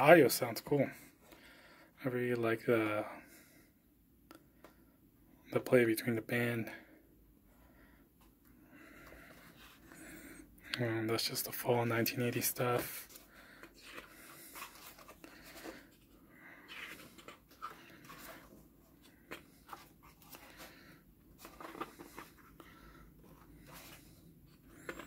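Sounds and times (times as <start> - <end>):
book pages turning: 13.1 - 25.0.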